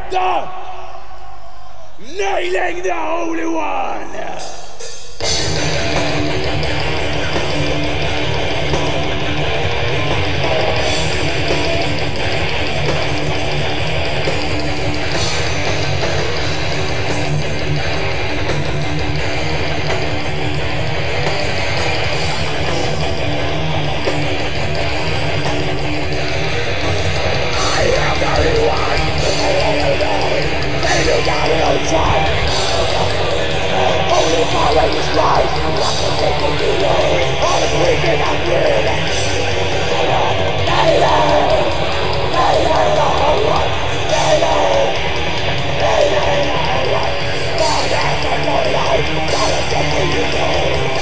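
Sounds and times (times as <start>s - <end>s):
metal band playing: 0.0s - 51.0s.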